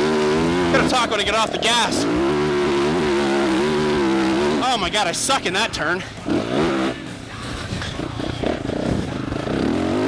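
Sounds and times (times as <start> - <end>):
motocross engine under throttle: 0.0 - 7.1, 7.8 - 10.0.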